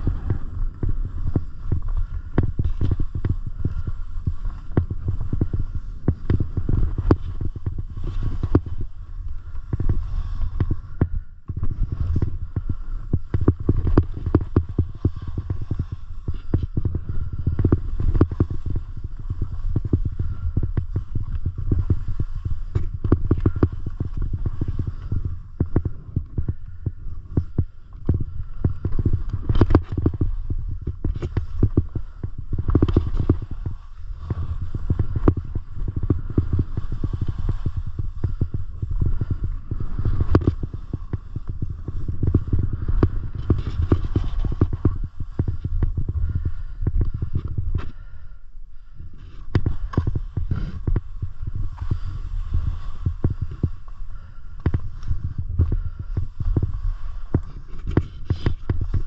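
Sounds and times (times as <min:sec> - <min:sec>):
ski edges clicking: 0:00.0 - 0:26.4, 0:27.2 - 0:48.0, 0:49.2 - 0:59.0
skis scraping over snow: 0:00.0 - 0:48.2, 0:49.1 - 0:59.0
wind on microphone: 0:00.0 - 0:59.0.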